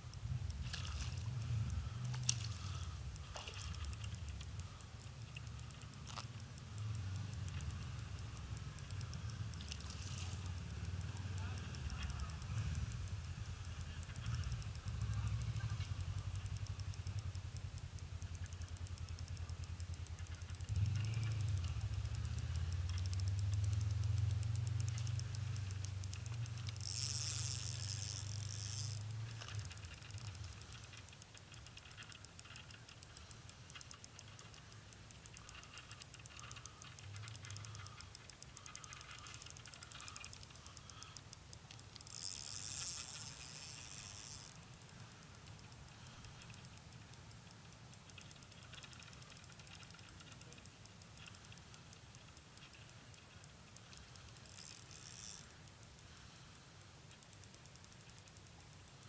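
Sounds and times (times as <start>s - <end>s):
fishing reel ticking: 0.0s - 59.0s.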